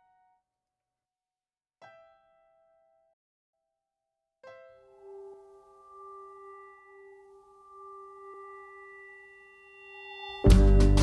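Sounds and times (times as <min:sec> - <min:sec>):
faint chime-like ringing tone: 0:04.8 - 0:10.9.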